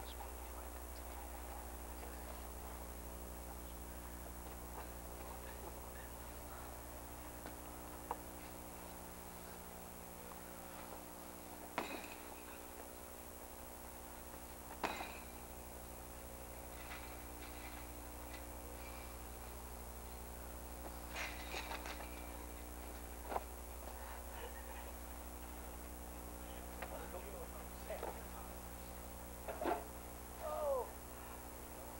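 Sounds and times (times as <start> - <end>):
steady low hum: 0.0 - 31.9
knocks and bangs on a chain-link cage: 14.8 - 15.4.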